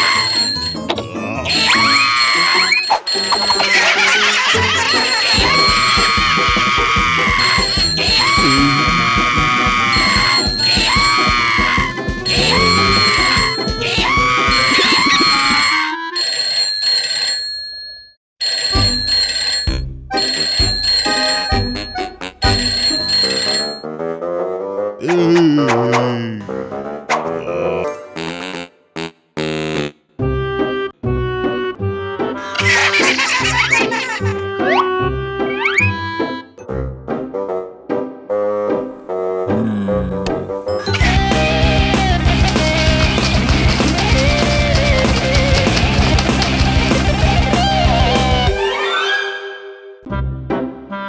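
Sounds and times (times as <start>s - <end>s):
cartoon soundtrack music: 0.0s - 16.2s, 19.7s - 51.0s.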